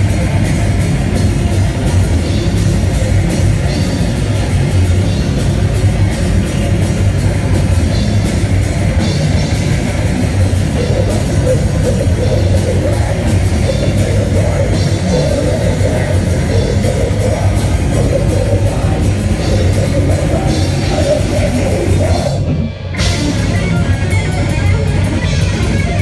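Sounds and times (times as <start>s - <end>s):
distorted electric guitars: 0.0s - 26.0s
drum kit: 0.0s - 26.0s.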